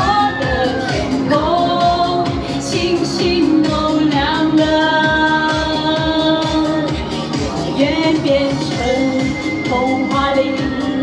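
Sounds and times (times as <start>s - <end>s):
pop ballad over a speaker: 0.0s - 11.0s.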